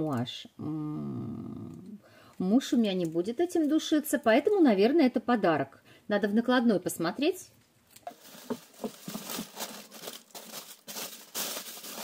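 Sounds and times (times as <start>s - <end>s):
packing material rustling: 8.0s - 12.0s.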